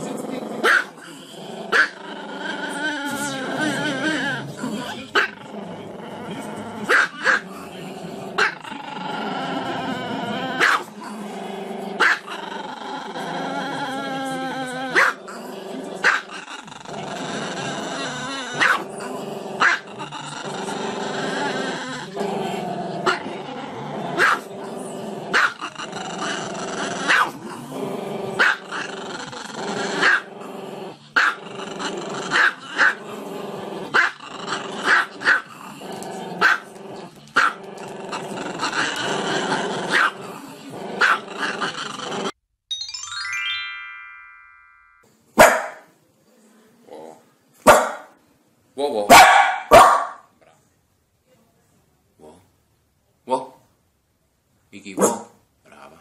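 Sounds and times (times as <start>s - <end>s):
small dog barking: 0.6s - 1.0s, 6.9s - 7.4s, 10.6s - 10.9s, 12.0s - 12.3s, 15.0s - 15.2s, 18.6s - 18.8s, 24.2s - 24.5s, 25.3s - 25.6s, 27.1s - 27.4s, 28.4s - 28.6s, 34.9s - 35.4s, 36.4s - 36.7s, 39.9s - 40.2s, 41.0s - 41.2s, 45.4s - 45.9s, 47.6s - 48.1s, 49.1s - 50.3s, 55.0s - 55.4s.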